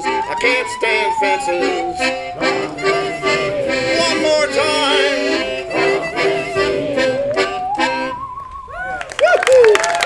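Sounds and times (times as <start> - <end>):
bowed musical saw: 0.0 - 8.4
harmonica: 0.0 - 8.4
piano accordion chords: 0.0 - 8.4.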